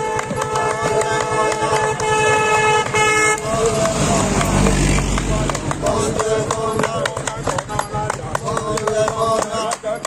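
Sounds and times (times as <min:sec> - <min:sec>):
held horn-like tones: 0:00.0 - 0:04.2.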